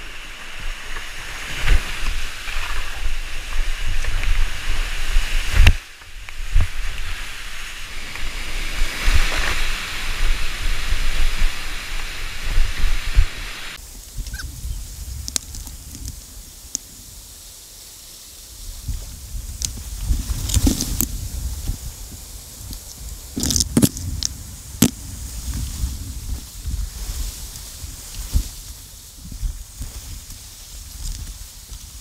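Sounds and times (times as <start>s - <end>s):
whitewater rushing: 0.0s - 13.8s
wind buffeting camera: 0.0s - 17.5s, 18.5s - 32.0s.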